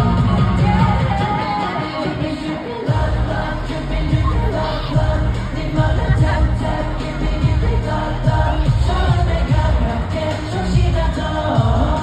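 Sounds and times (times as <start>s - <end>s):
pop song over arena sound system: 0.0s - 12.0s.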